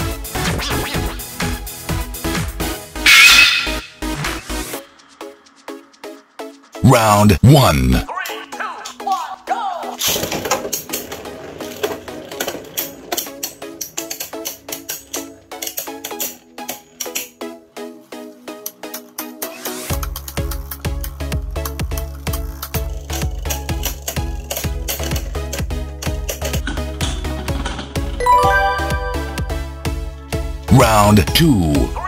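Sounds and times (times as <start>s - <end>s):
background music: 0.0s - 32.0s.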